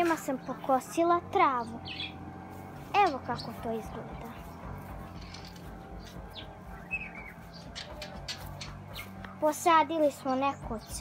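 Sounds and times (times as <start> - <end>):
bird chirps: 1.6 - 2.4, 3.0 - 9.4.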